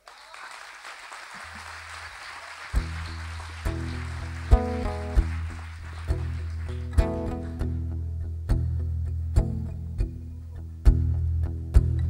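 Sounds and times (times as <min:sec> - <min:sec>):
faint audience applause: 0:00.0 - 0:07.8
acoustic guitar strumming chords: 0:02.8 - 0:12.0.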